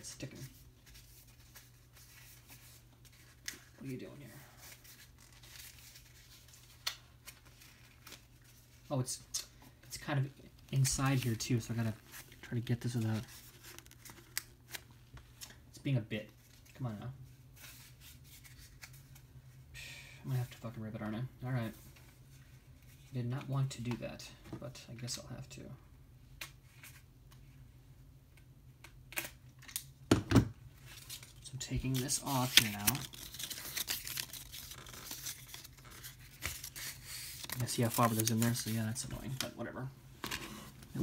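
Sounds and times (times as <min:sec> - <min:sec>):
paper rustling and scratching: 0:00.2 - 0:08.9, 0:30.8 - 0:39.6.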